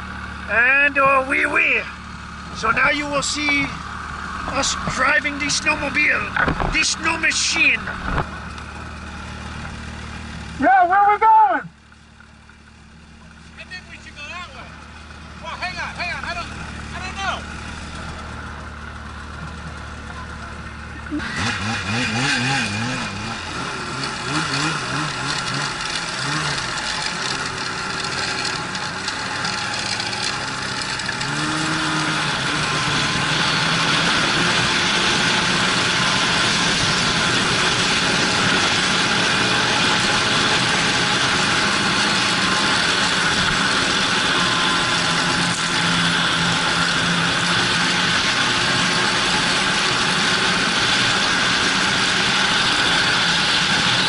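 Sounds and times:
constant rushing noise: 0.0 - 9.8, 13.2 - 54.0
snowmobile engine: 0.0 - 54.0.

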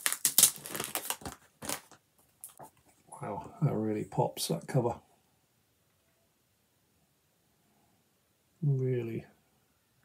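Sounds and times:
plastic sleeve crinkling: 0.0 - 2.7.

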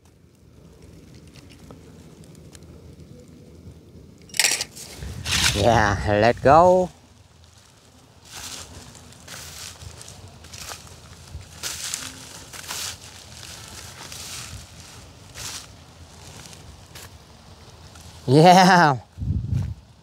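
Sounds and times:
footsteps crunching through dry straw: 4.7 - 20.0.

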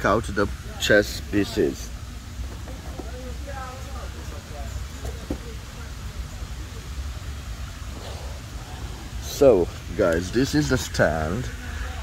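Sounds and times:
faint distant voices: 0.0 - 12.0
steady low rumble: 0.0 - 12.0.

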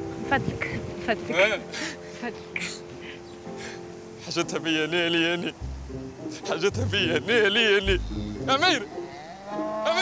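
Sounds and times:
cow mooing: 7.8 - 10.0.

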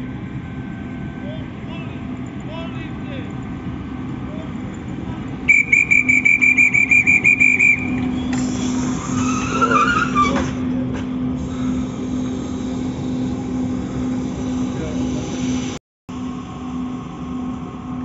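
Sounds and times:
electric train humming: 0.0 - 18.0
train hissing: 5.0 - 15.8
dispatcher's whistle trilling: 5.5 - 10.5.

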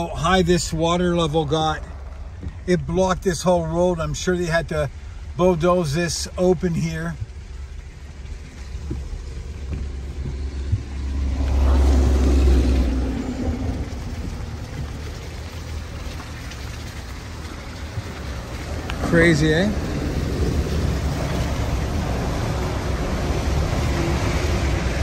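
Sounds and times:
car cabin rumble: 6.6 - 15.2.

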